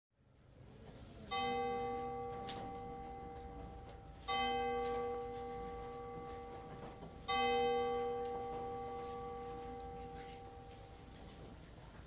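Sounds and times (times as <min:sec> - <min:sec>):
church bell tolling: 0:01.3 - 0:11.2.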